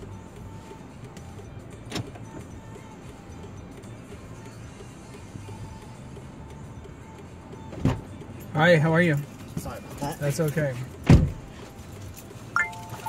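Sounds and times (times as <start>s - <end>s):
faint radio music: 0.0s - 13.0s.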